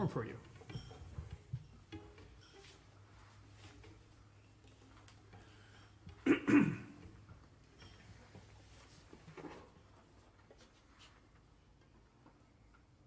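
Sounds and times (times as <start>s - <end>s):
faint handling noises: 0.0s - 6.2s, 7.0s - 13.0s
person clearing throat: 6.2s - 7.1s.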